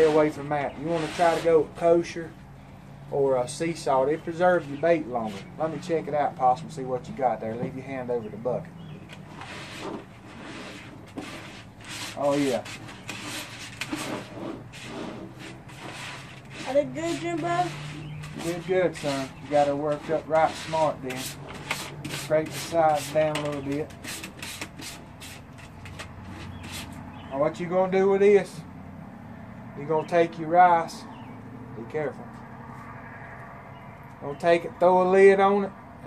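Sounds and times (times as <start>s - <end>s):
hands scraping bait in plastic bucket: 0.0s - 1.8s, 8.9s - 27.1s.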